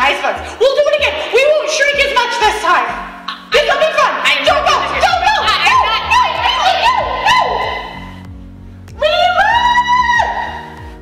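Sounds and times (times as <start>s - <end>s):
low background music: 0.0s - 11.0s.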